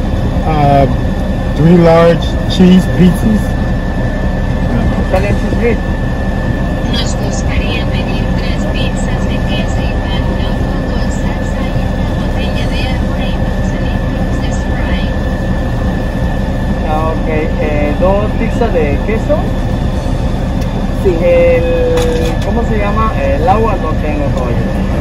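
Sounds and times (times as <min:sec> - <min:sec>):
faint steady whine: 0:00.0 - 0:25.0
muffled voices: 0:00.0 - 0:25.0.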